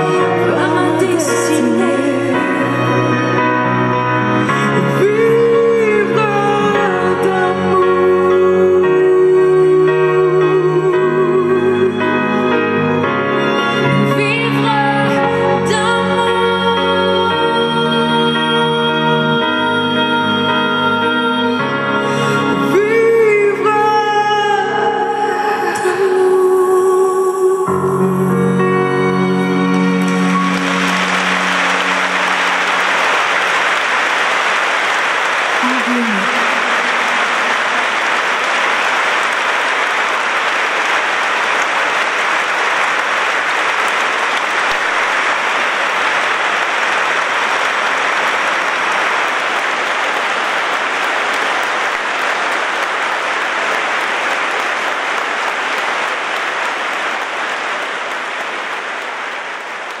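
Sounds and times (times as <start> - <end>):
audience applauding: 0.0 - 8.2, 29.5 - 60.0.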